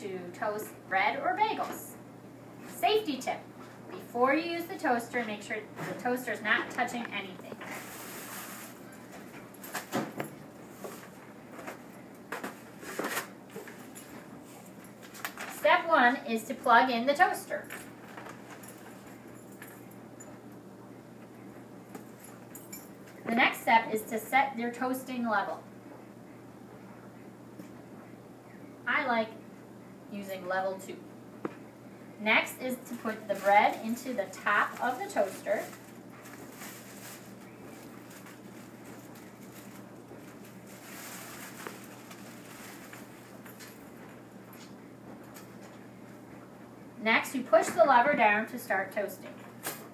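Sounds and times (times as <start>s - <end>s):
steady low hum: 0.0s - 49.9s
plastic bag rustling: 6.4s - 15.8s, 32.7s - 44.1s.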